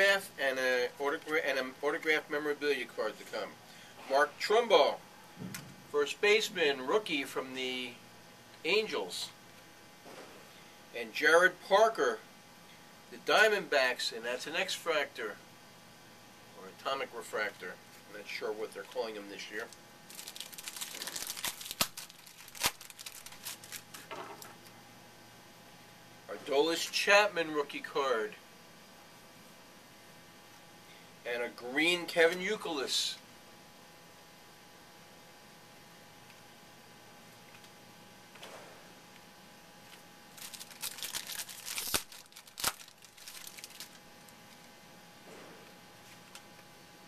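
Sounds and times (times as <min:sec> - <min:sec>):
wrapper tearing and crinkling: 0:19.6 - 0:24.1, 0:40.3 - 0:44.7
cards rustling: 0:19.6 - 0:24.4, 0:39.9 - 0:44.7.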